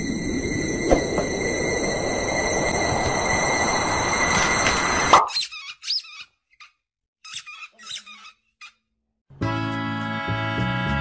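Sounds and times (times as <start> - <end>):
thin steady whine: 0.0 - 5.2
short high-pitched squeaks: 5.3 - 8.8.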